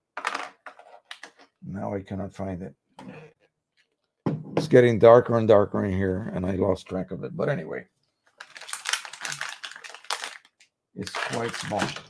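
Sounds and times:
small objects rummaged on a desk: 0:00.1 - 0:01.6, 0:08.3 - 0:12.0.

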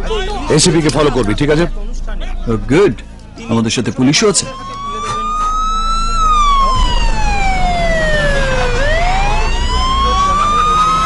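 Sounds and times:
low rumble: 0:00.6 - 0:10.8
police siren wailing: 0:04.1 - 0:11.0.

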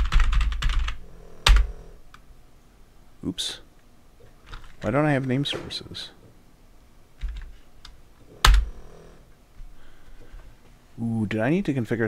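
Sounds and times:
computer keyboard typing: 0:00.0 - 0:01.7, 0:08.4 - 0:08.7.

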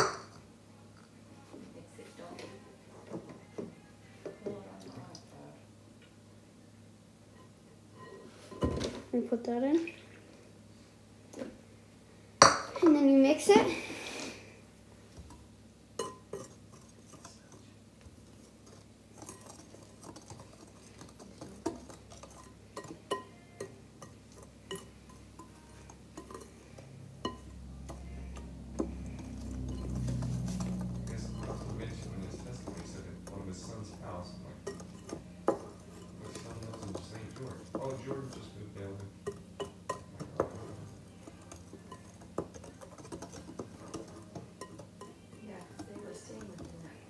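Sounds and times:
whisk clinking against glass bowl: 0:16.0 - 0:17.6, 0:19.2 - 0:26.6, 0:27.2 - 0:28.0, 0:29.6 - 0:46.8.

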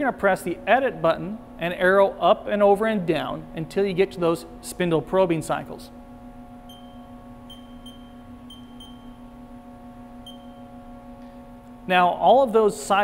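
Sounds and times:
low electrical hum: 0:00.0 - 0:13.0
short high keypad beeps: 0:06.7 - 0:09.2, 0:10.2 - 0:10.6.

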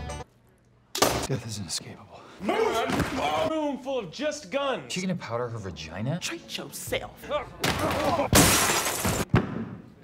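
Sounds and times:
loud crash of something breaking: 0:07.7 - 0:09.3.

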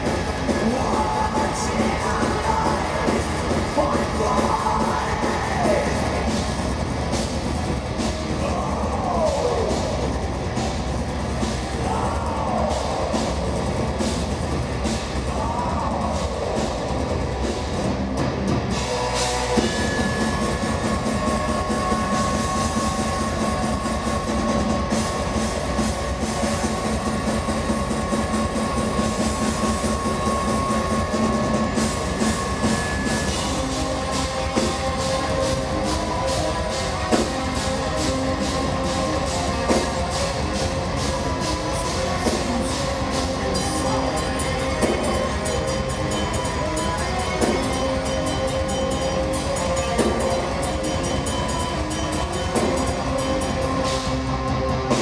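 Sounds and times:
live metal band: 0:00.0 - 0:55.0.

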